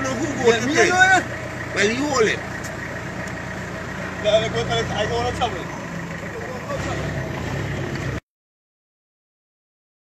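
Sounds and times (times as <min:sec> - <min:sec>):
vehicle engine idling: 0:00.0 - 0:08.2.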